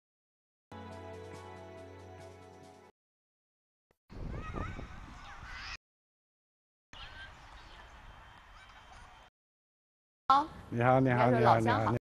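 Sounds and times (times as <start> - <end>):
faint outdoor ambience: 7.0 - 9.3.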